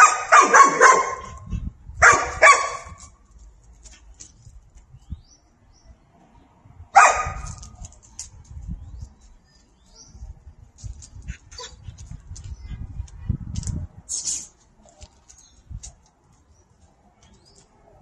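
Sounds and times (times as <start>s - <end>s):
dog barking: 0.0s - 1.4s, 2.0s - 3.0s, 7.0s - 7.5s.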